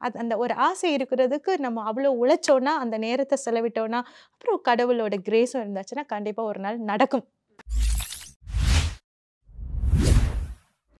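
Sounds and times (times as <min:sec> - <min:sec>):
whoosh sound effect: 0:09.6 - 0:10.6.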